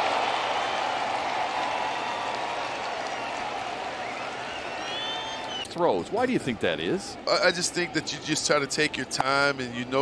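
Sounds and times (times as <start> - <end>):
crowd cheering and applauding: 0.0 - 5.7.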